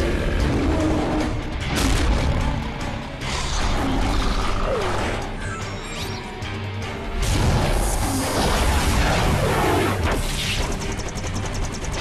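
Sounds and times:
dramatic cartoon score: 0.0s - 12.0s.

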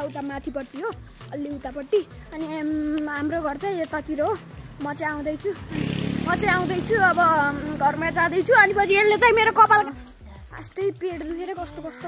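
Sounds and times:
boy talking: 0.0s - 12.0s.

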